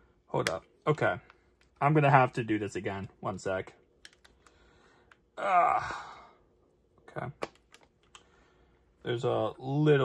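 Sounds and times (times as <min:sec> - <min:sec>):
person speaking: 0:00.2 - 0:04.4.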